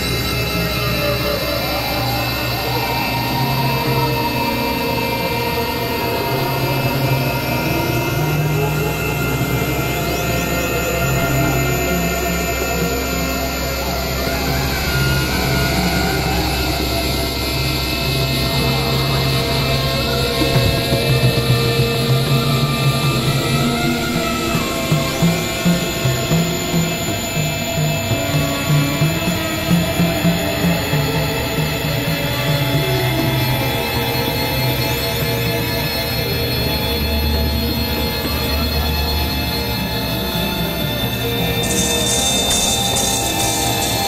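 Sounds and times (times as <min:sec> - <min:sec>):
electronic drone music: 0:00.0 - 0:44.0
low pulsing synthesizer figure: 0:00.0 - 0:44.0.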